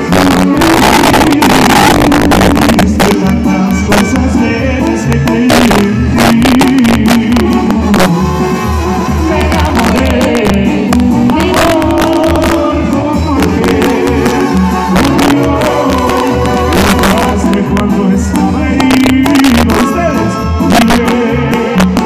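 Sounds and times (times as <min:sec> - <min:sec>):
brass band playing: 0:00.0 - 0:22.0
sousaphone bass pulsing: 0:00.0 - 0:22.0.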